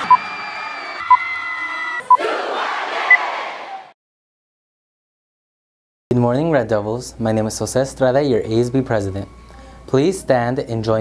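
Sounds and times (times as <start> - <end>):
crowd cheering and shouting: 0.0 - 4.0.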